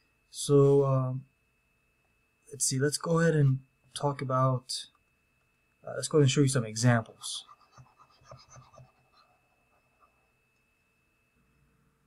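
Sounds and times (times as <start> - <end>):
faint steady high tone: 0.0 - 12.0.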